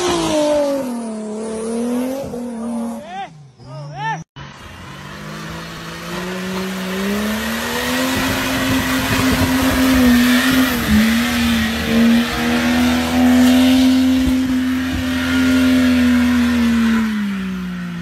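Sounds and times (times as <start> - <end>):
engine revving high: 0.0 - 3.2, 4.4 - 18.0.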